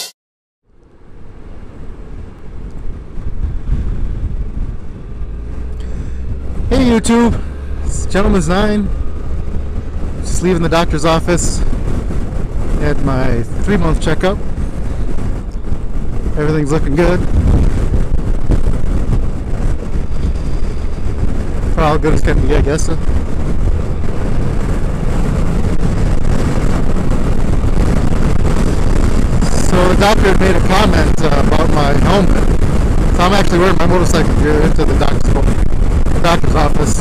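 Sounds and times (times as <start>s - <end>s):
motorcycle engine and road noise: 0.0s - 37.0s
wind buffeting microphone: 0.8s - 37.0s.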